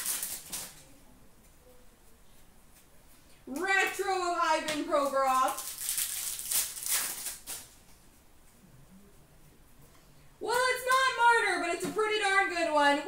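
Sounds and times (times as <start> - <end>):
trading cards rustling and flicking: 0.0 - 0.9, 4.7 - 7.8.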